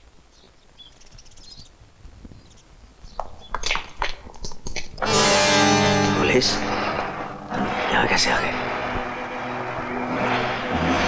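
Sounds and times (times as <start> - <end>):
deeper louder engine: 5.2 - 11.0
vehicle engine running: 5.7 - 11.0.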